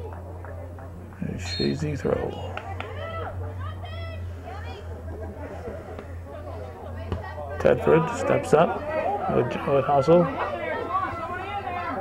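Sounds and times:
steady low hum: 0.0s - 9.2s
spectators chattering: 0.0s - 12.0s.

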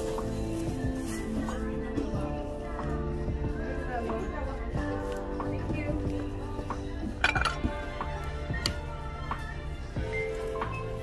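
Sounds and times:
background music: 0.0s - 11.0s
china plate clinking: 7.2s - 7.7s.

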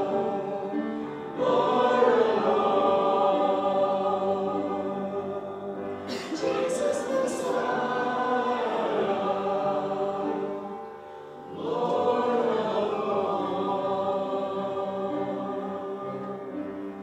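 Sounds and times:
congregation singing: 0.0s - 17.0s.

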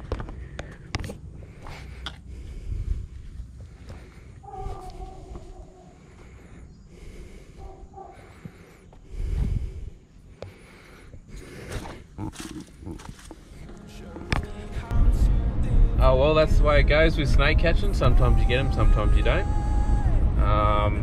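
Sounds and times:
wind rumble: 0.0s - 8.4s, 9.0s - 10.2s, 14.4s - 21.0s.

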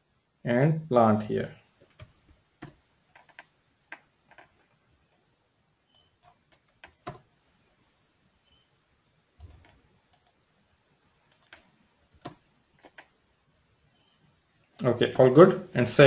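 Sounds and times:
mouse clicks: 1.8s - 4.7s, 5.9s - 7.3s, 9.4s - 10.4s, 11.3s - 13.2s.

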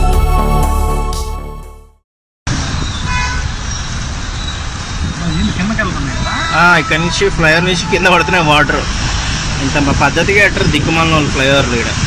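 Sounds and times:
vehicle horn toot: 3.0s - 3.6s
floodwater rushing: 4.2s - 12.0s.

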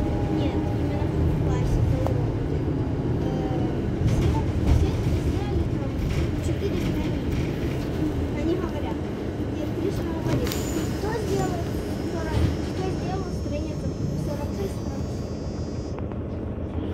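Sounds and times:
bus engine idling: 0.0s - 16.9s.

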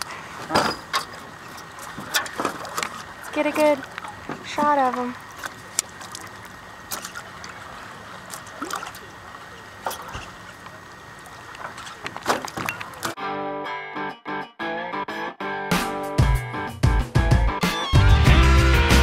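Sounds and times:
water splashing: 1.1s - 13.2s
music with pitched accompaniment: 13.2s - 19.0s.

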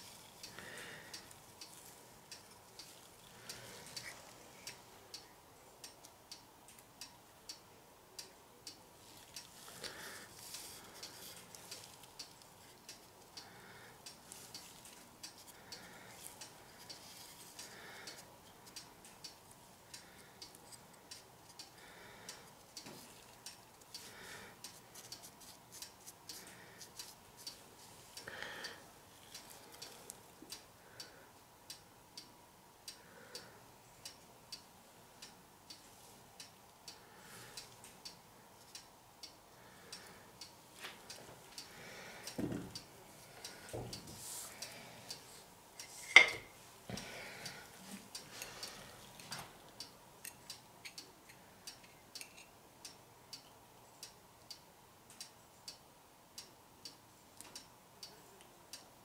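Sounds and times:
steady light ticking: 0.0s - 59.0s.

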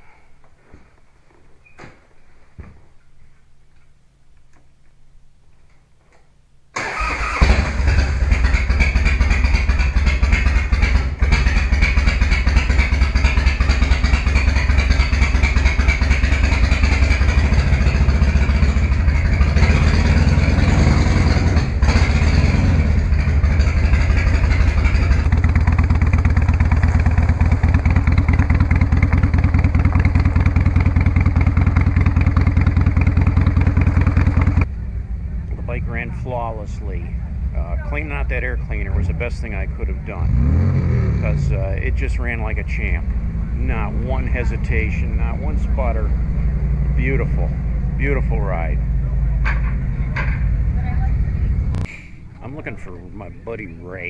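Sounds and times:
motorcycle engine starting and idling: 6.8s - 54.0s.

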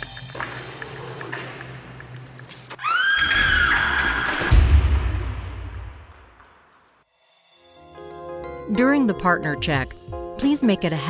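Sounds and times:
music: 0.0s - 1.7s, 7.0s - 11.0s
person screaming: 2.8s - 4.3s.

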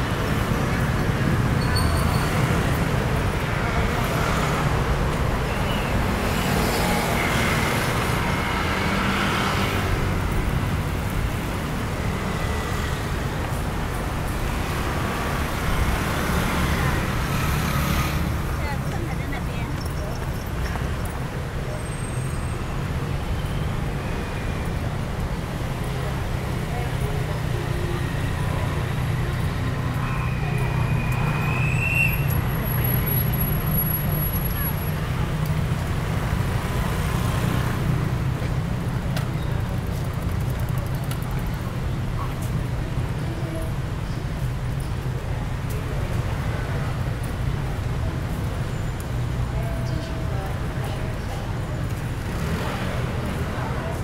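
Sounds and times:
street traffic rumble: 0.0s - 54.0s
vehicles passing: 0.0s - 54.0s.

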